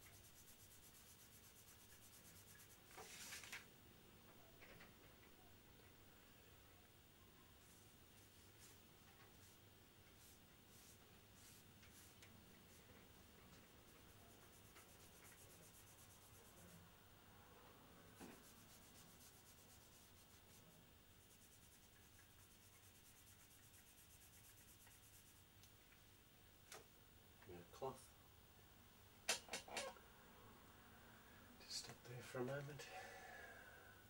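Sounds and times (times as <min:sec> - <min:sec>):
tissue rubbing on graphite: 0:00.0 - 0:03.5, 0:09.4 - 0:12.9, 0:13.8 - 0:16.8, 0:18.2 - 0:25.5.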